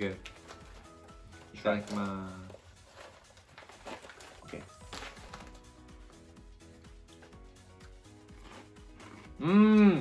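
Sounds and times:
foil snack bag crinkling: 0:00.0 - 0:05.9
soft background music: 0:00.0 - 0:10.0.

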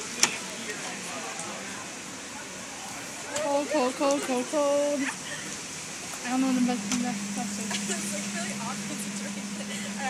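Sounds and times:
faint voices: 0:00.0 - 0:10.0
rain falling on wet street: 0:00.0 - 0:10.0.

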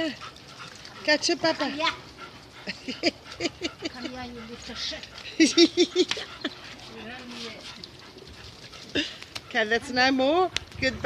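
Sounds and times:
low outdoor background: 0:00.0 - 0:11.0.

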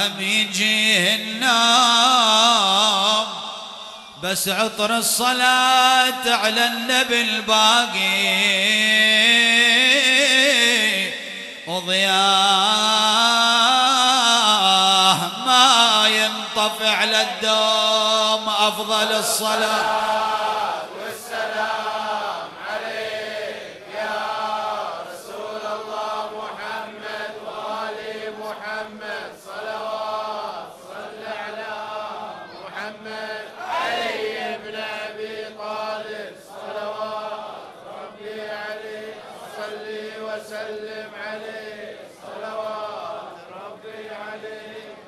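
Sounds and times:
voices chanting a phrase: 0:18.8 - 0:45.0.

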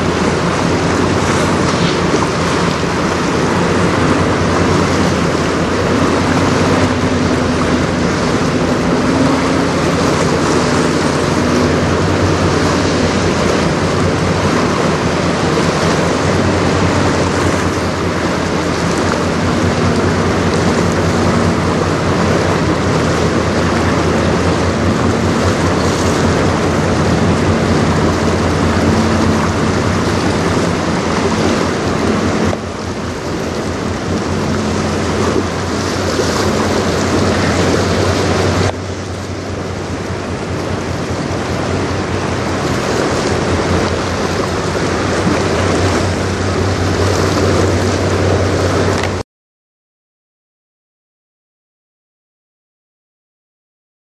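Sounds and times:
rush of wind and water: 0:00.0 - 0:49.2
ship engine drone: 0:00.0 - 0:49.2.

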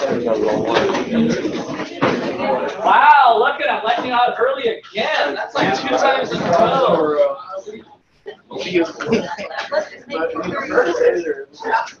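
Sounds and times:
students talking: 0:00.0 - 0:12.0.

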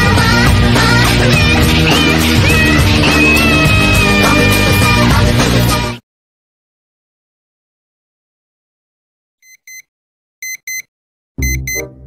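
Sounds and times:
alarm clock beeping: 0:09.4 - 0:09.8, 0:10.4 - 0:11.9.

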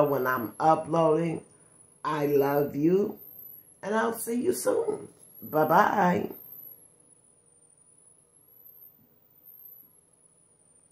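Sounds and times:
thin steady hum: 0:00.0 - 0:10.9.

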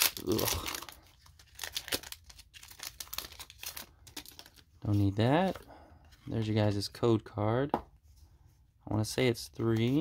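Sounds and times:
foil wrapper crinkling: 0:00.0 - 0:04.6.

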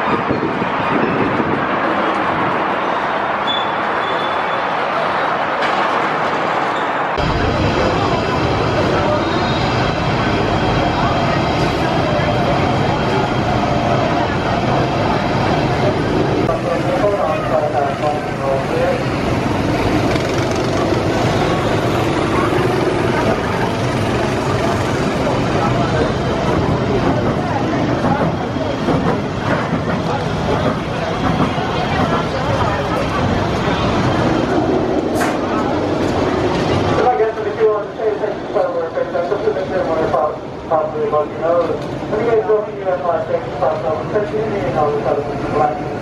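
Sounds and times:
amusement park background noise: 0:00.0 - 0:46.0.

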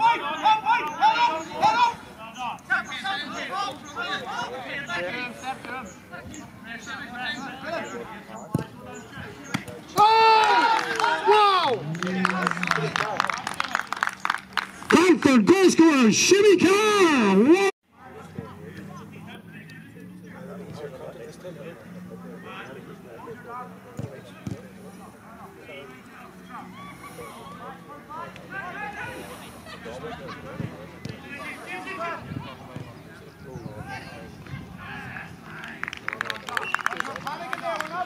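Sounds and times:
loud celebrating shouts: 0:10.0 - 0:13.0
faint calls and chatter: 0:16.9 - 0:38.0.

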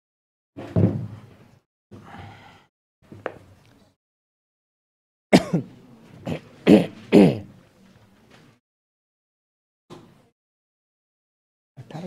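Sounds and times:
person coughing: 0:05.3 - 0:07.5.

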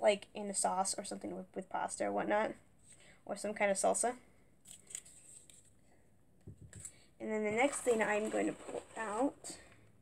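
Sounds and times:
items being handled rustling: 0:04.6 - 0:09.8.

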